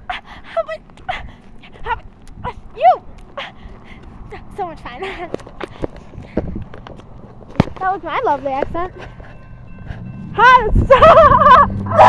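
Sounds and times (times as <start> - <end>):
girl giggling and yelping: 10.4 - 12.0.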